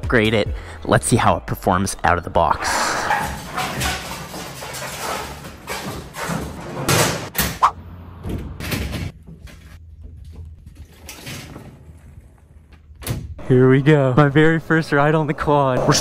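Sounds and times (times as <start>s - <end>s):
scrapes: 2.6s - 7.8s
metal ramp clanking and knocking: 3.1s - 7.6s.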